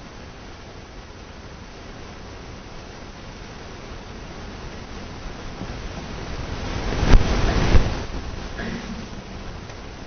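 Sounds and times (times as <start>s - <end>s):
low microphone bumps: 5.5s - 9.8s
microphone handling noise: 6.8s - 9.7s.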